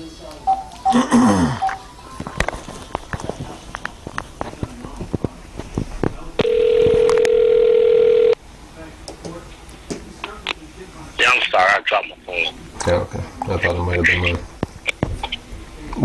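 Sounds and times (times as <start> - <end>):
telephone beep tone: 6.4 - 8.4.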